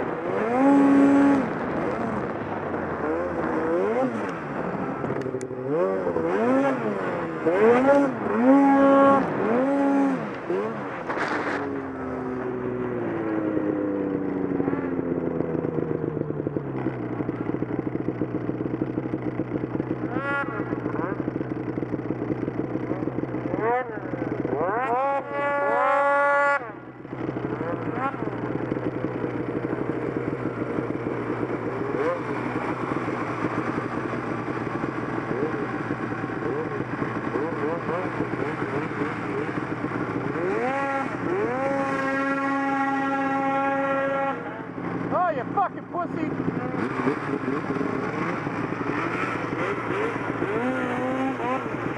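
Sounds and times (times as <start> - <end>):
snowmobile engine idling and revving: 0.0 - 51.9.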